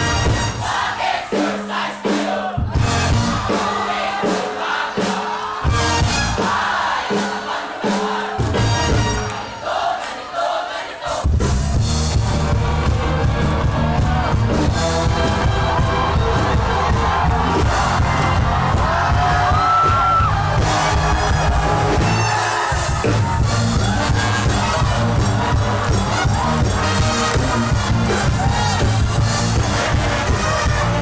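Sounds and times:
brass band playing upbeat music: 0.0 - 31.0
crowd noise: 0.0 - 31.0.

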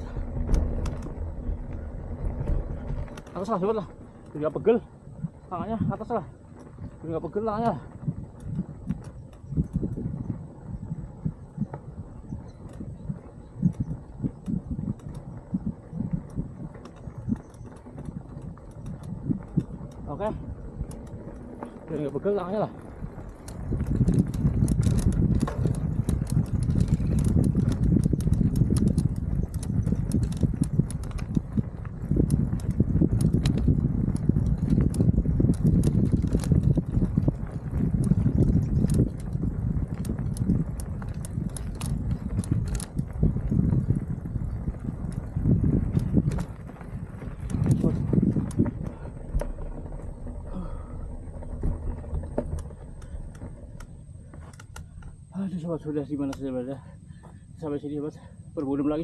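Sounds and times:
wind on microphone: 0.0 - 56.1
bike tyres rolling on dirt: 0.0 - 59.0.

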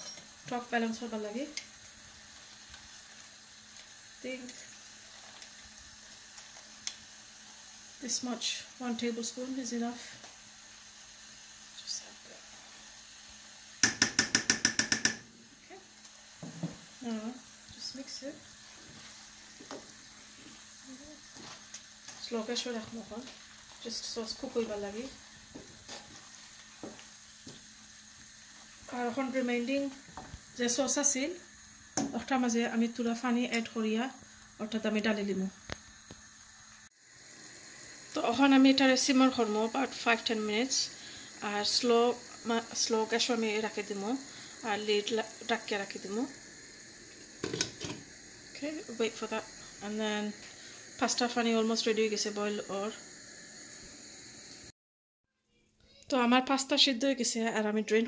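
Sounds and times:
sauce bubbling in a pan: 0.0 - 54.7.

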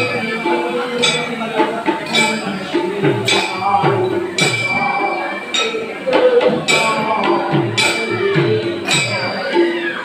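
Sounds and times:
hand cymbal ringing: 0.0 - 10.0
person singing: 0.0 - 10.0.

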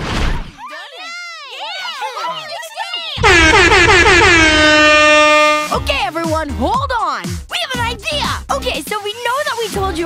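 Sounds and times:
air horn blast: 3.2 - 5.9.

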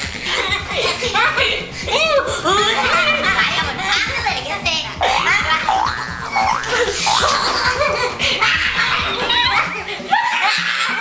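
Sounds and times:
people laughing loudly: 0.0 - 11.0.

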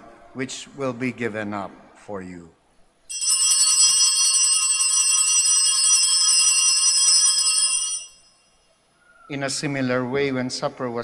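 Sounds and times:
altar bells jangling: 3.1 - 8.6.

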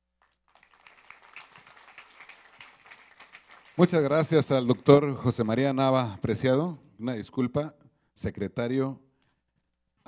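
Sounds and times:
audience applauding: 0.2 - 5.3.

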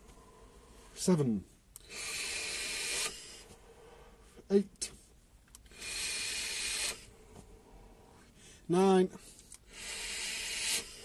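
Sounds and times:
vape hiss: 1.8 - 3.4, 5.7 - 7.1, 9.6 - 11.0.

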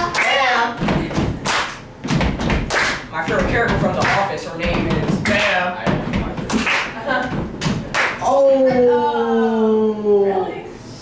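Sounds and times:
person rapping: 3.2 - 6.6.

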